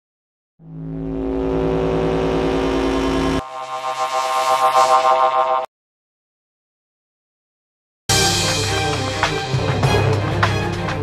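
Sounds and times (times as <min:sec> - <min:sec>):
synthesized drone: 0:00.6 - 0:05.7
fast-pulsing wavering tone: 0:00.7 - 0:05.6.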